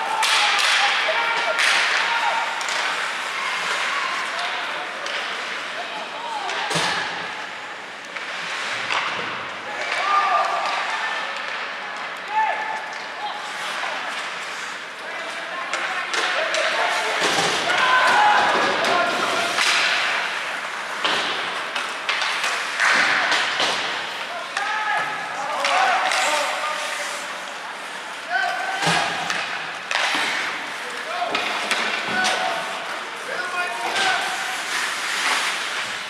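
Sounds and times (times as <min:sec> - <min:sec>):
people shouting: 0:00.0 - 0:04.8, 0:16.3 - 0:19.8
hockey sticks cracking on puck: 0:00.0 - 0:36.0
skates scraping ice: 0:00.0 - 0:36.0
puck hitting boards: 0:00.1 - 0:03.2, 0:15.6 - 0:26.6, 0:28.7 - 0:32.6.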